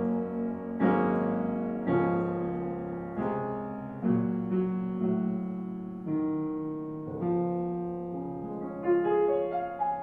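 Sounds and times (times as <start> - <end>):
upright piano chords: 0.0 - 10.0.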